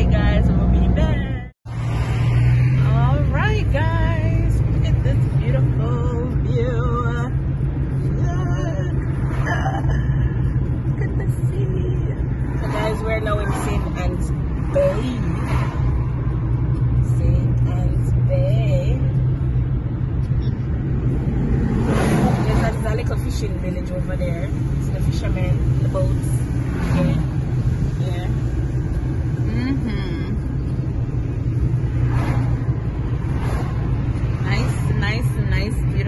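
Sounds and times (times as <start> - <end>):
car road and engine noise: 0.0 - 36.0.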